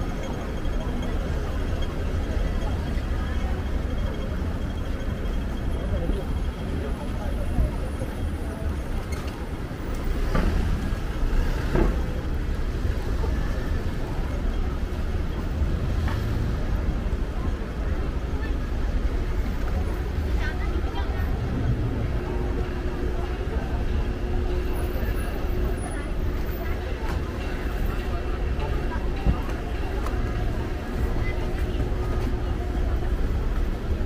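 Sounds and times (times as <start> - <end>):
traffic noise: 0.0 - 34.0
voices of passers-by: 0.0 - 34.0.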